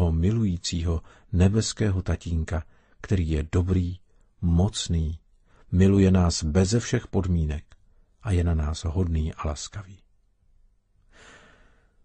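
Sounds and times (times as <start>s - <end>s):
man breathing in softly: 1.0s - 1.3s, 2.7s - 3.0s, 5.4s - 5.7s, 11.0s - 12.0s.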